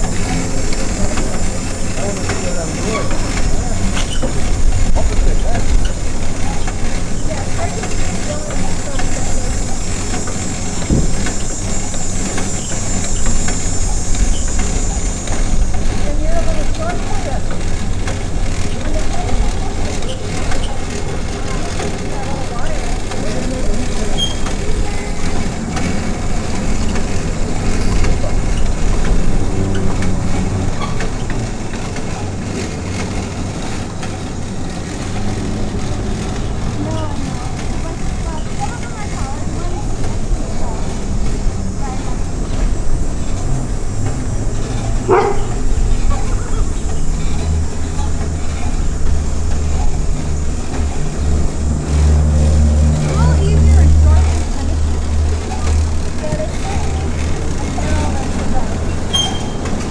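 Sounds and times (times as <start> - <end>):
indistinct voices: 0.0 - 59.9
vehicle engine running: 0.0 - 59.9.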